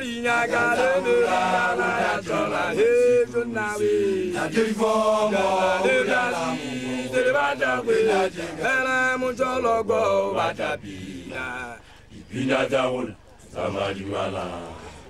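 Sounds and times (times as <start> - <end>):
person chanting: 0.0 - 15.0.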